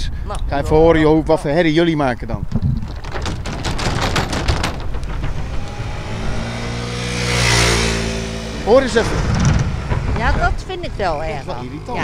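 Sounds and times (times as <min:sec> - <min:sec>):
metal deck plates clattering: 0:02.8 - 0:11.6.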